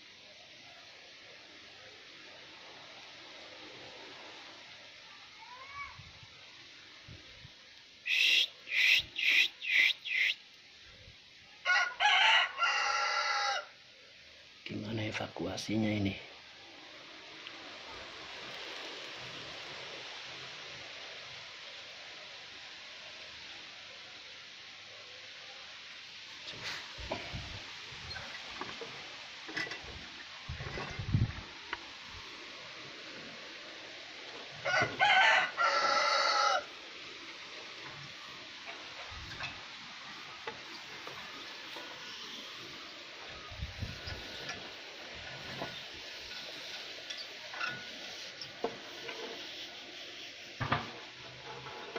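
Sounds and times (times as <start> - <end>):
steady hiss: 0.0 - 51.9.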